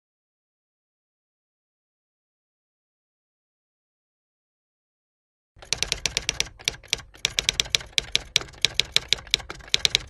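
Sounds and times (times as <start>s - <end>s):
keyboard typing clicks: 5.6s - 10.0s.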